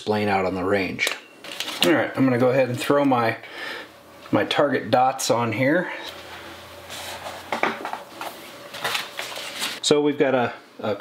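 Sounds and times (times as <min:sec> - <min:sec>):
paper rustling: 0:01.5 - 0:02.0, 0:06.9 - 0:09.8.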